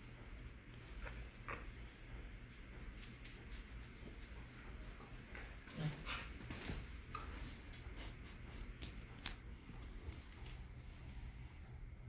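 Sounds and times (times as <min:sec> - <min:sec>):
faint steady low hum: 0:00.0 - 0:12.0.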